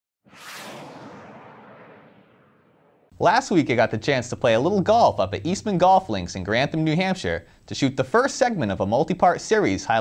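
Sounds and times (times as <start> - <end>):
whoosh sound effect: 0.3 - 3.1.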